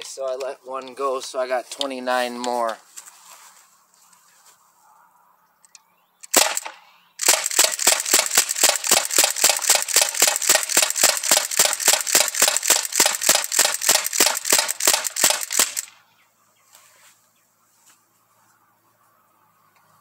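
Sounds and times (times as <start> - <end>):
air rifle shots: 6.2 - 16.0.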